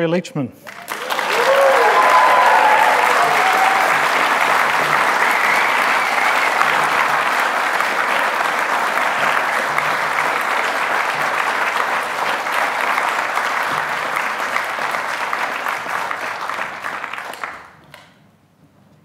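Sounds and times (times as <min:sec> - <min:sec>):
audience applauding: 0:00.6 - 0:18.0
whoops: 0:00.8 - 0:07.2.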